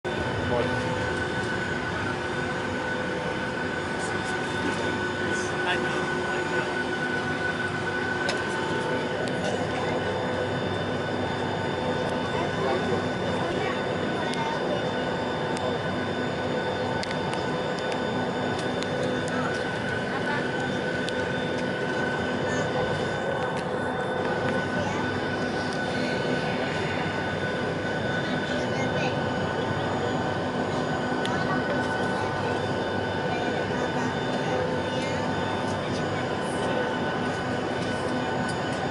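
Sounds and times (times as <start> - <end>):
cabin air rush with engine whine: 0.1 - 38.9.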